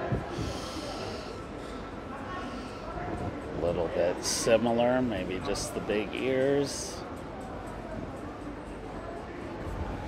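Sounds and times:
murmur of busy street: 0.0s - 10.0s
breathy exhale: 0.3s - 3.0s.

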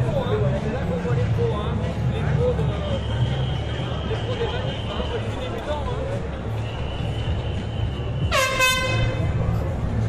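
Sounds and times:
air horn blast: 8.3s - 9.2s.

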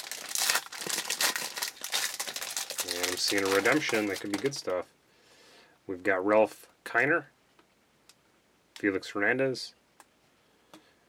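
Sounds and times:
foil wrapper crinkling: 0.0s - 4.8s.

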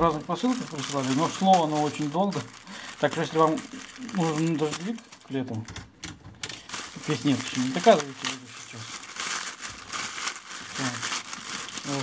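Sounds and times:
plastic mailer bag crinkling: 0.0s - 5.7s, 6.4s - 12.0s.

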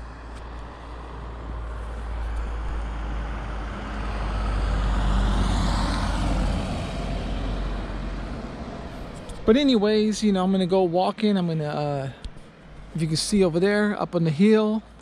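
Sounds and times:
vehicle passing: 0.0s - 9.8s.

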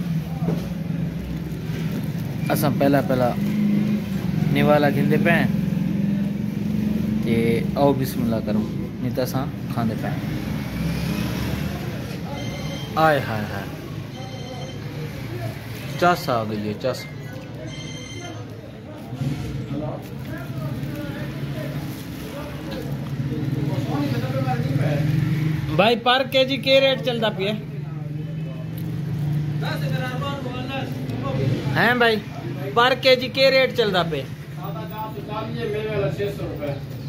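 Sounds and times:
faint voices: 11.5s - 33.1s.

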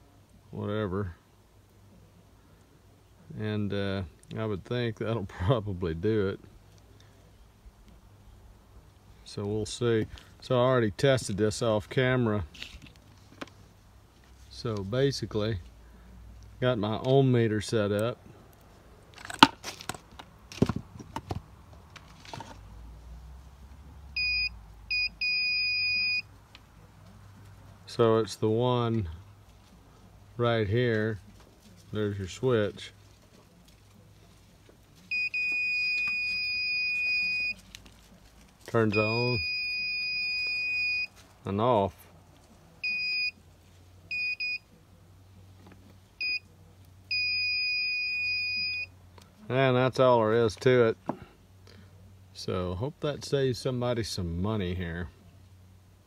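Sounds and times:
continuity tester beeps: 24.2s - 26.3s, 35.1s - 37.6s, 38.9s - 41.1s, 42.8s - 43.4s, 44.1s - 44.7s, 46.2s - 46.4s, 47.1s - 48.9s.

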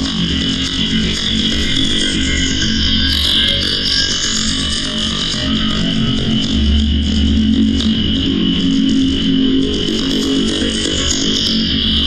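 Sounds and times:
distorted noise music: 0.0s - 12.0s.

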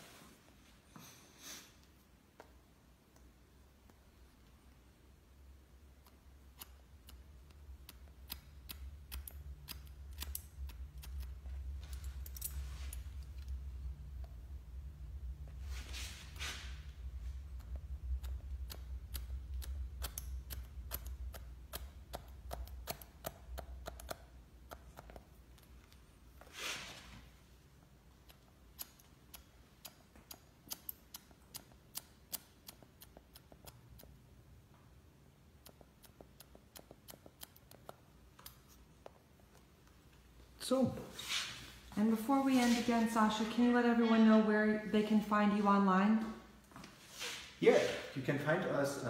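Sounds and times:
scissors snipping hair: 6.0s - 13.5s, 17.6s - 26.0s, 28.2s - 34.2s.

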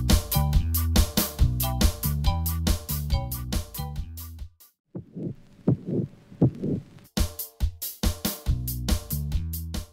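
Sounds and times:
heartbeat double thumps: 5.0s - 7.0s.

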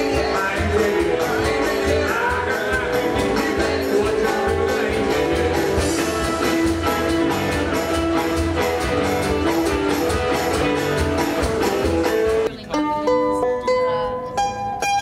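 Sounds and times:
drum beat: 0.0s - 12.6s
live band playing up-tempo: 0.0s - 15.0s
mandolin picking single notes: 0.0s - 15.0s.

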